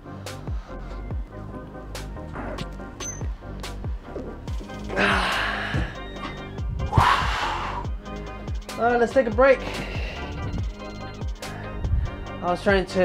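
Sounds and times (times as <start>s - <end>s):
background music with steady beat: 0.0s - 13.0s
breathy exhalations with grunt: 4.8s - 6.1s, 6.8s - 8.0s.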